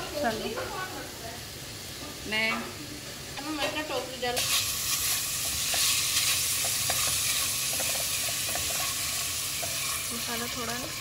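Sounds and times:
chicken sizzling in hot oil: 0:00.0 - 0:11.0
spatula scraping: 0:04.4 - 0:11.0.

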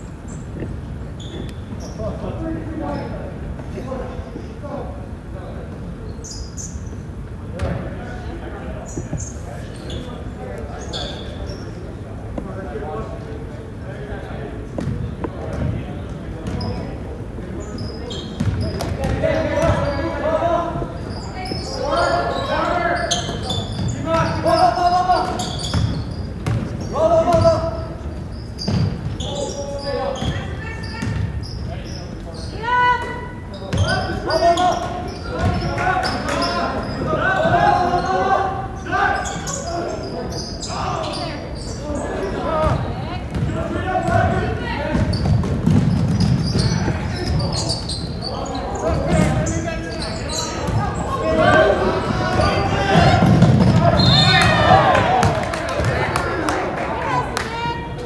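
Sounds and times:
voices calling out: 0:15.7 - 0:58.0
basketball bouncing on hardwood floor: 0:42.6 - 0:43.5, 0:44.9 - 0:46.7, 0:52.3 - 0:53.9.

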